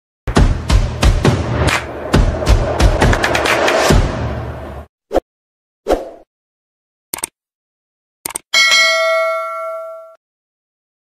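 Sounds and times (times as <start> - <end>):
double mouse-click: 8.2 - 8.4
bell ding: 8.6 - 10.2.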